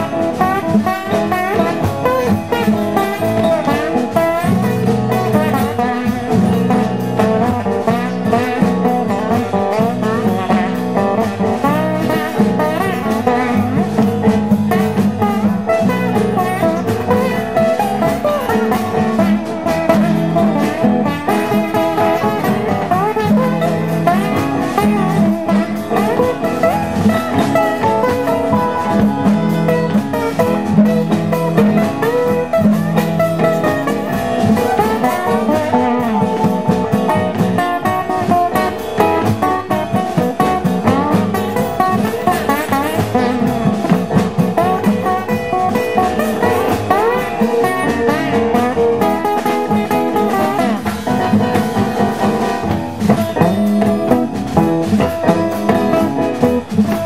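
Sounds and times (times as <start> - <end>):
acoustic guitar picking: 0.0 - 57.0
blues band playing: 0.0 - 57.0
walking upright bass: 0.0 - 57.0.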